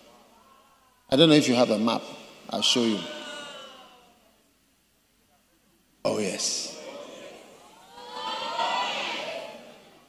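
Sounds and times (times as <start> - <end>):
congregation responding aloud: 0.0 - 4.4, 6.1 - 10.0.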